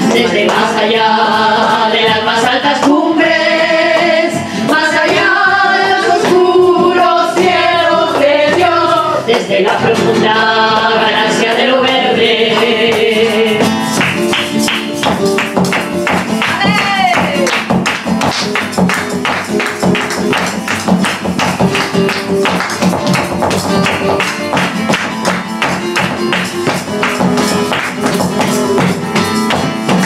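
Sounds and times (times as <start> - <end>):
person singing: 0.0 - 14.2, 16.4 - 17.8
guitar: 0.0 - 30.0
hand-clapping: 12.5 - 30.0.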